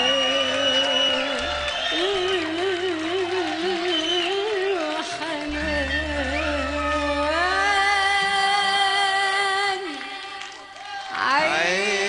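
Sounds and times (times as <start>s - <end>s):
audience cheering: 0.0s - 8.8s, 9.9s - 12.0s
pop band playing: 0.0s - 9.3s.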